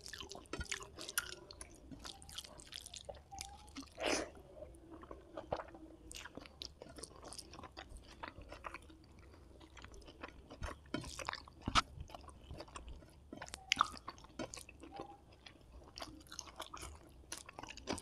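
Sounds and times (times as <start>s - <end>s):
close chewing with mouth clicks: 0.0s - 18.0s.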